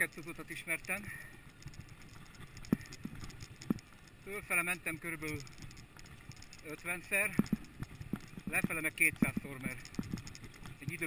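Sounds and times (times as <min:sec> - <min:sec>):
bicycle rolling on dirt trail: 0:00.0 - 0:11.0
sharp knocks over bumps: 0:04.9 - 0:11.0.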